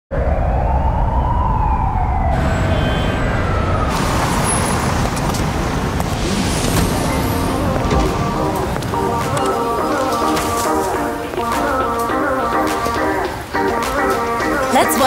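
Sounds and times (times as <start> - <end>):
siren wailing: 0.1 - 5.3
traffic rumble: 0.2 - 14.9.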